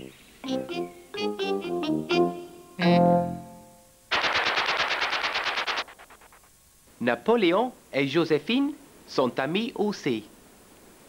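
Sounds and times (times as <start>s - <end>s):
closing musical chord: 0.0s - 4.0s
fast rattle of sharp hits: 4.1s - 6.5s.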